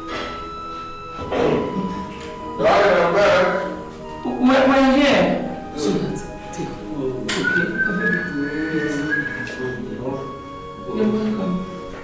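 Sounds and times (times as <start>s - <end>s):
background music: 0.0s - 12.0s
person whistling: 7.3s - 10.0s.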